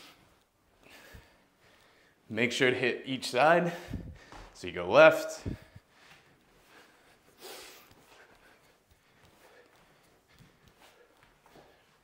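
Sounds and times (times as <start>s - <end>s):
feet thudding on exercise mat: 3.9s - 4.6s.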